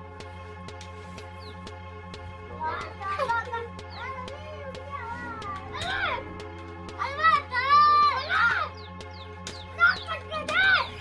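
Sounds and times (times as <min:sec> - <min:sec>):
clicking beat: 0:00.0 - 0:11.0.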